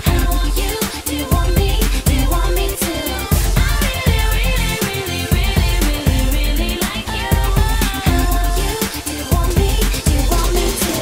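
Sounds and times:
pop music with heavy bass: 0.0s - 11.0s.

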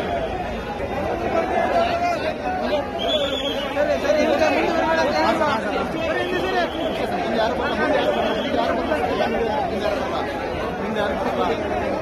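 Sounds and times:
crowd shouting and talking: 0.0s - 12.0s.

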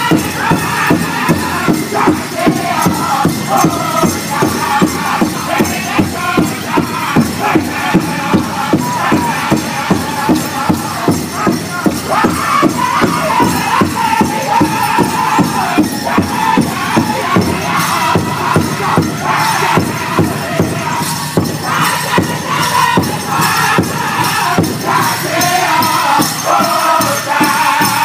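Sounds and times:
big drum beating: 0.0s - 28.0s
men singing in unison: 0.0s - 28.0s.

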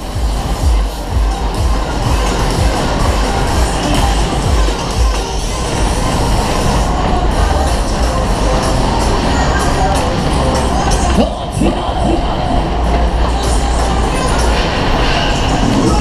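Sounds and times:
loud fairground music: 0.0s - 16.0s
ride cars rumbling on track: 0.0s - 16.0s.

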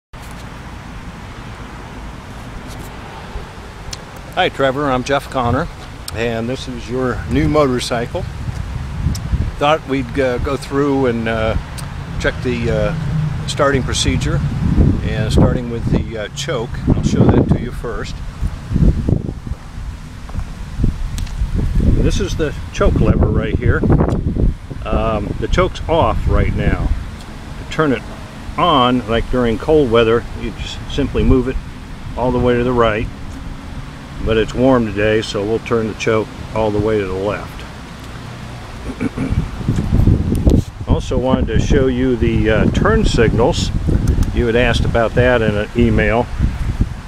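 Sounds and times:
wind buffeting microphone: 1.6s - 47.0s.

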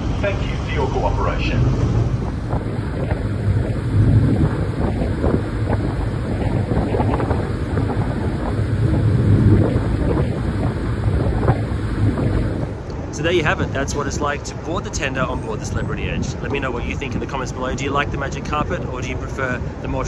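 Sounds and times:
boat engine: 0.0s - 20.0s
boat wake rushing: 0.0s - 20.0s
wind buffeting microphone: 0.0s - 20.0s.

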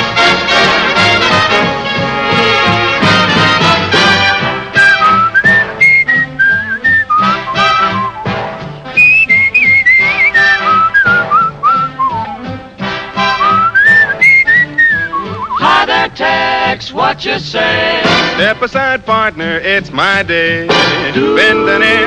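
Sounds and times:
swing big band playing: 0.0s - 22.0s
man whistling a melody: 4.8s - 8.4s, 9.0s - 12.5s, 13.3s - 15.7s.

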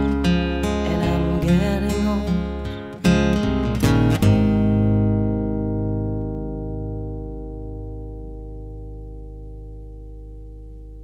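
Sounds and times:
acoustic guitar chords: 0.0s - 11.0s.

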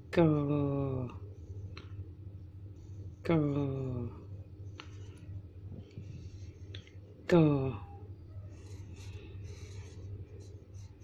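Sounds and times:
steady low hum: 0.0s - 11.0s
marker scratching on paper: 8.3s - 11.0s.

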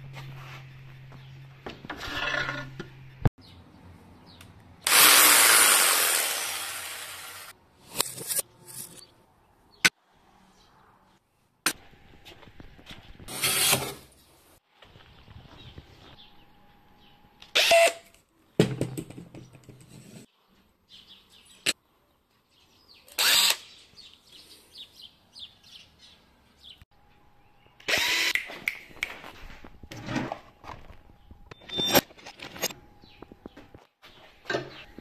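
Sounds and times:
cordless drill boring into wood: 4.8s - 7.5s, 23.2s - 23.6s, 27.9s - 28.4s
power tool cutting wood: 4.8s - 7.5s, 27.8s - 28.4s.

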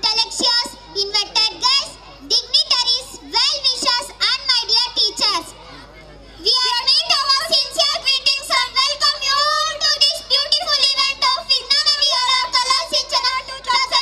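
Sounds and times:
girl speaking: 0.0s - 5.6s.

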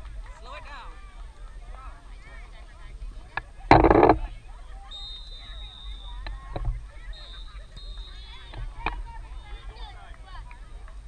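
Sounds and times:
faint far-off voices: 0.0s - 11.0s
thin steady high tone: 3.9s - 10.1s.

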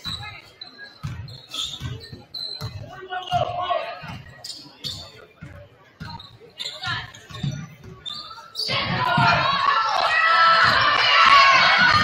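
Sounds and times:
loud shouting: 8.7s - 12.0s.

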